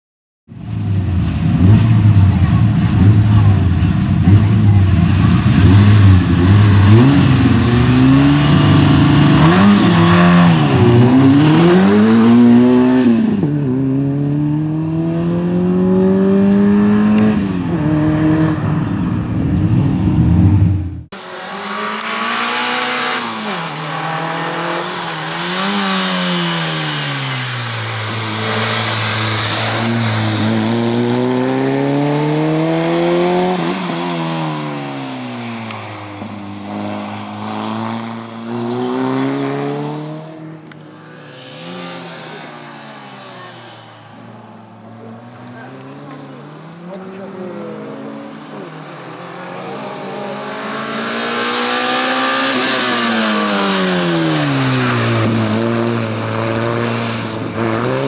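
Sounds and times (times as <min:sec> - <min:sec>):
rally car engine revving: 0:00.6 - 0:58.0.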